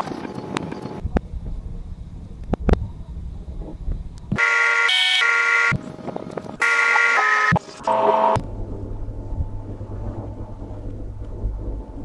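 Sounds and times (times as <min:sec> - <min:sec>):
low rumble: 0:00.8 - 0:04.4, 0:07.6 - 0:12.0
horn-like buzzing tones: 0:04.3 - 0:05.9, 0:06.6 - 0:08.5.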